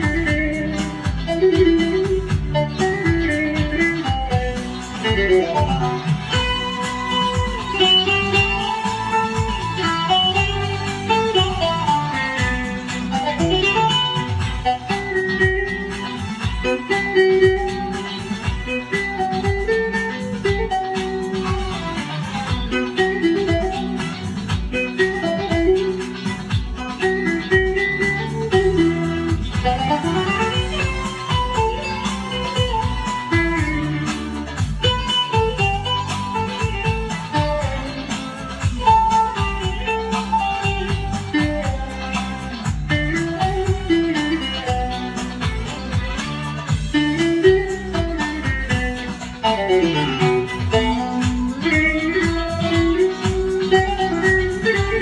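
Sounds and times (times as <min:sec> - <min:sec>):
plucked long-necked lute melody: 0:00.0 - 0:55.0.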